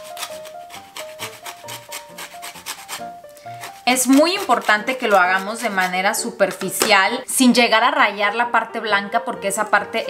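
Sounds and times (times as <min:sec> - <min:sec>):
lemon peel grating: 0:00.0 - 0:06.8.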